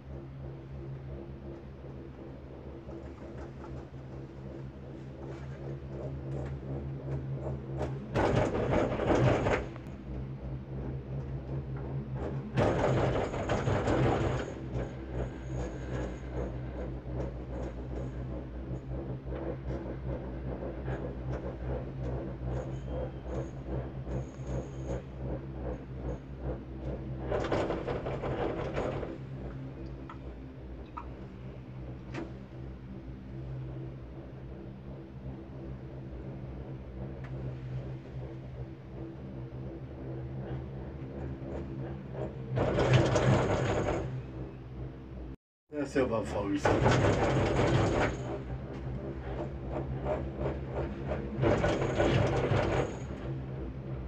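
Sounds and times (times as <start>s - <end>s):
gondola cabin hum with ticking: 0.0s - 54.0s
rattling rumble: 0.0s - 54.0s.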